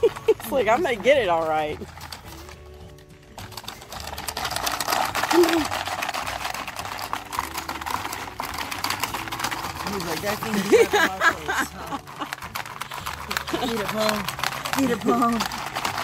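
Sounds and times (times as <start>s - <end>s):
background music: 0.0s - 16.0s
plastic game clattering: 0.0s - 16.0s.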